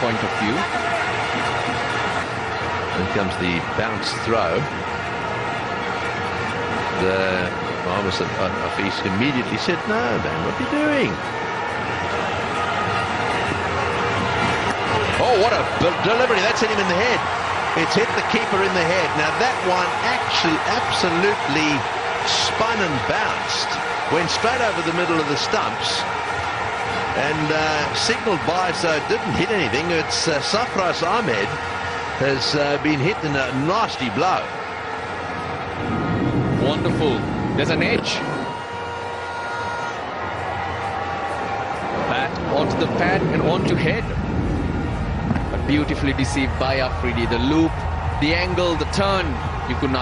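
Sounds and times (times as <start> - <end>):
stadium crowd noise: 0.0 - 50.0.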